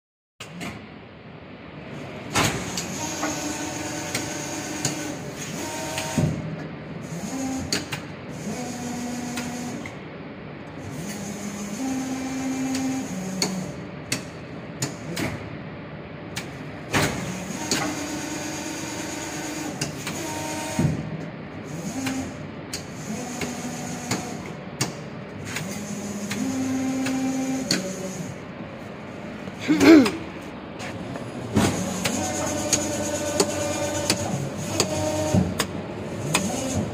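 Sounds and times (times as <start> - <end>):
hydraulic pump hum: 0.4 - 36.9.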